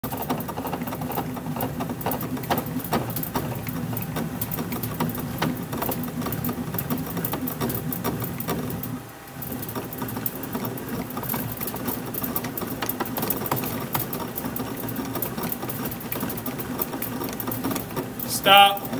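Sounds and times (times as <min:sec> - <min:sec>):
bat roller mechanical running: 0:00.0 - 0:18.9.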